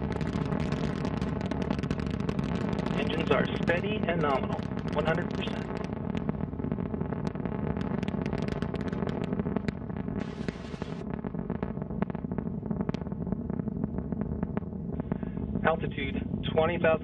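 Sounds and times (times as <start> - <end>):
rocket engine rumble with crackles: 0.0 - 17.0.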